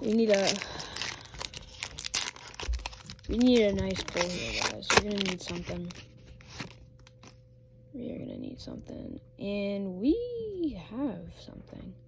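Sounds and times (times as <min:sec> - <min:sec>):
foil wrapper crinkling and tearing: 0:00.0 - 0:07.4.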